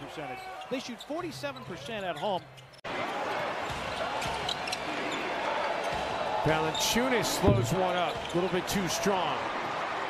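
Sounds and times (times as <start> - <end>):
arena noise: 0.0 - 10.0
basketball bouncing on hardwood: 7.4 - 8.3.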